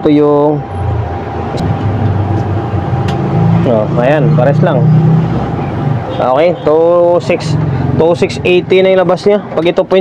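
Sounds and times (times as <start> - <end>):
low engine rumble: 0.2 - 9.9.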